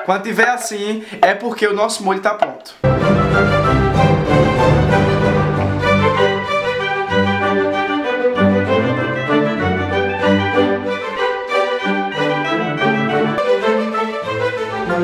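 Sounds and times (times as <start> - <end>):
instrumental music with bass line: 2.8 - 15.0.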